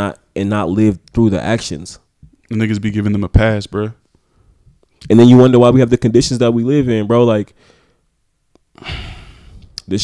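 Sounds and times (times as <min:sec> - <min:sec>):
man sighing breath into microphone: 0:08.8 - 0:09.8.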